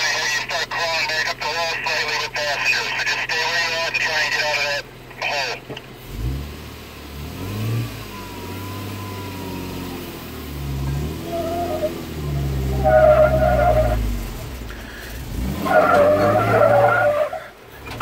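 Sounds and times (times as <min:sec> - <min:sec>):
car engine revving under load: 0:04.9 - 0:18.0
tyres squealing on rock: 0:11.2 - 0:12.0, 0:12.6 - 0:14.1, 0:15.4 - 0:17.5.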